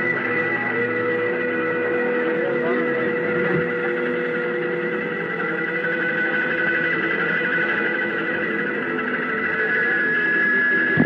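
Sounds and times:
rock band sustained drone: 0.0s - 11.0s.

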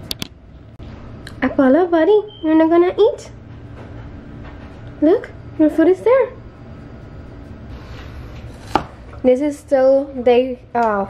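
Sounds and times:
cleaver chopping on cutting board: 8.6s - 9.0s.

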